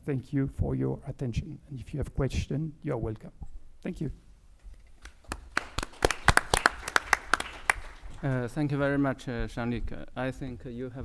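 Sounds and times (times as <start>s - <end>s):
audience clapping: 5.0s - 8.6s.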